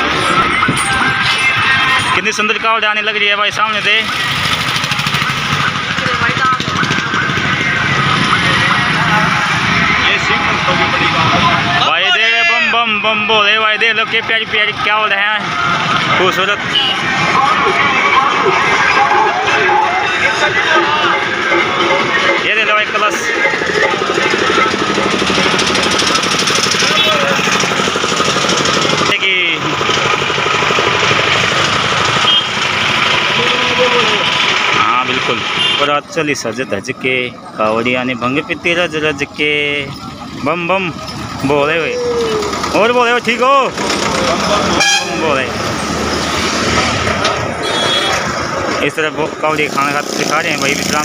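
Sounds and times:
engine chugging: 0.0 - 51.0
passing traffic rush: 0.0 - 51.0
man calling out: 11.6 - 13.1
nearby voices: 41.7 - 42.8.

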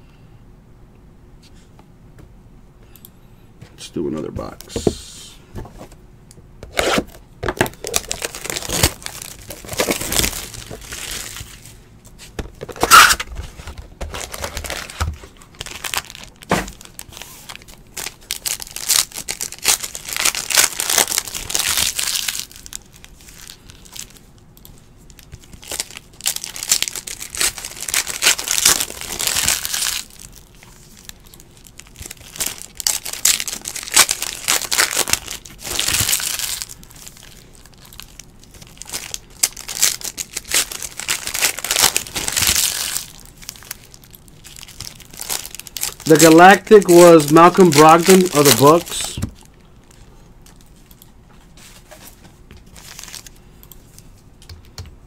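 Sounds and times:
foil wrappers crinkling and tearing: 7.5 - 11.8, 12.6 - 24.3, 25.0 - 50.0, 51.9 - 53.4.

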